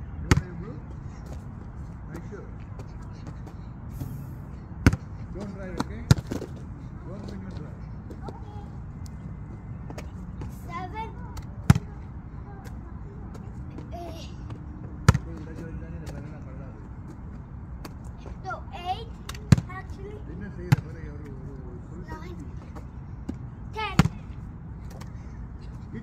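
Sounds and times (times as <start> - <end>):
basketball thudding on asphalt: 0.2 - 0.6, 4.8 - 6.6, 11.3 - 12.0, 14.5 - 16.3, 19.2 - 20.0, 20.6 - 21.2, 22.6 - 25.1.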